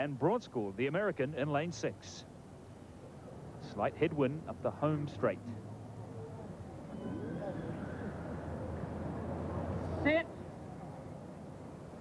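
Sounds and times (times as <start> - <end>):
hushed crowd murmur: 2.3 - 12.0.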